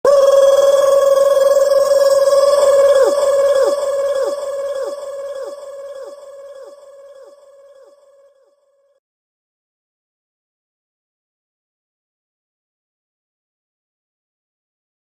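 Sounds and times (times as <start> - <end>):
ringing synth tone with echo: 0.1 - 8.9.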